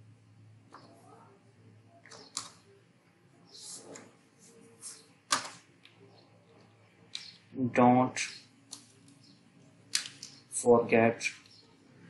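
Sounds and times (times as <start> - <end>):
keyboard keystrokes clicking: 2.1 - 2.6
person speaking: 9.9 - 11.9.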